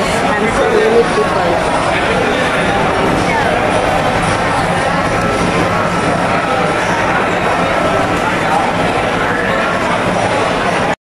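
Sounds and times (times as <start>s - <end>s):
many people talking: 0.0s - 11.0s
steady background din: 0.0s - 11.0s.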